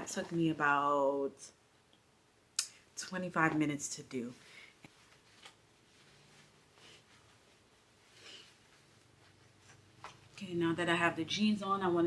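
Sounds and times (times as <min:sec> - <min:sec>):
soft rustle: 0:04.2 - 0:10.4.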